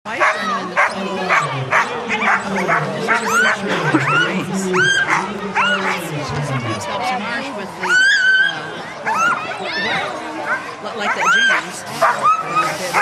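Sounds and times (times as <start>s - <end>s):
sled dogs barking and yelping: 0.1s - 6.2s, 7.8s - 13.0s.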